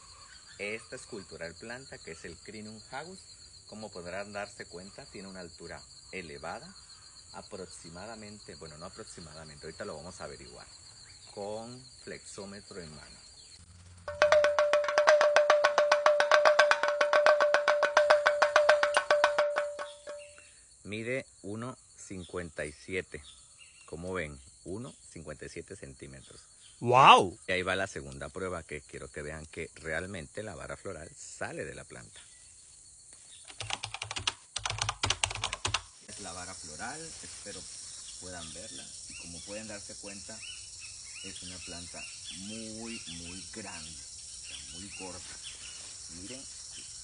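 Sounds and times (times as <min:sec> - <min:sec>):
low thumps: 0:14.1 - 0:20.4
rapid ticking: 0:14.1 - 0:20.4, 0:33.5 - 0:35.9
leaves crackling and rustling: 0:35.9 - 0:38.7, 0:44.6 - 0:46.9.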